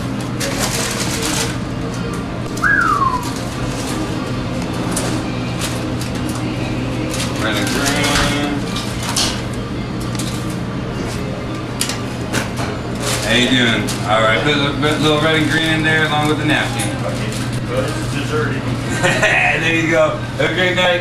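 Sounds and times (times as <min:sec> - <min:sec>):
kitchen equipment hum: 0:00.0 - 0:21.0.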